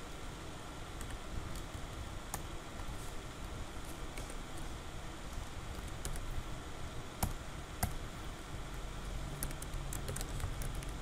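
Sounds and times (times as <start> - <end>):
low background noise: 0.0 - 11.0
keyboard keystrokes: 9.4 - 11.0.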